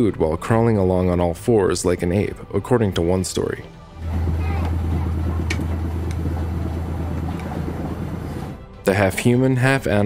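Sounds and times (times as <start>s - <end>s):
faint voices: 4.0s - 8.6s
steady low hum: 4.0s - 8.7s.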